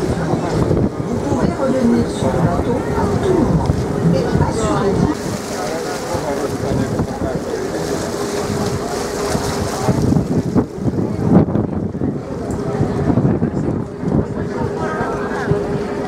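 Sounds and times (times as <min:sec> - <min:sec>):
ferry engine humming: 0:00.0 - 0:16.0
wind rushing across microphone: 0:00.0 - 0:16.0.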